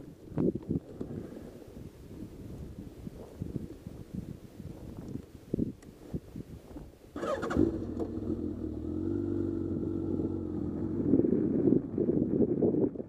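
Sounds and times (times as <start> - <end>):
motorcycle engine: 7.2 - 12.2.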